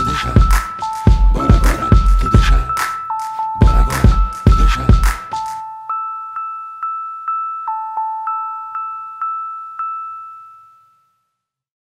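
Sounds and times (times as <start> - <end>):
bell-like chime ringing: 0.0 - 11.6.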